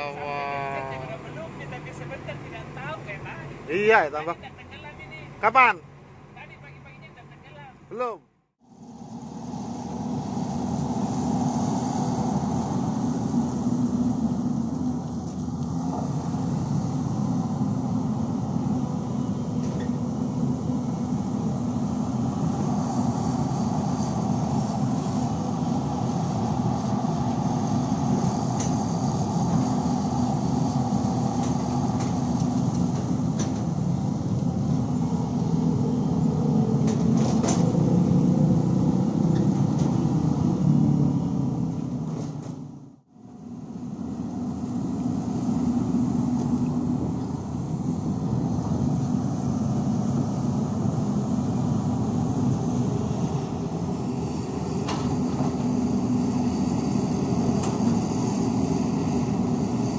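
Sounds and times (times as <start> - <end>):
excavator diesel engine running: 0.0 - 59.9.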